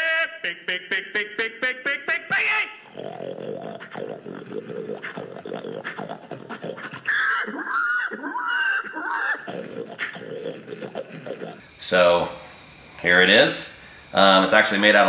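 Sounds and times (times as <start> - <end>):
man making high squeals: 2.2 - 11.6
man making pig grunts: 2.8 - 11.6.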